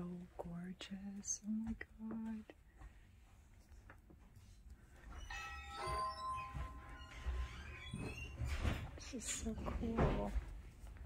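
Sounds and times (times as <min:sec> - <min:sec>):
electronic door chime: 0:05.1 - 0:08.8.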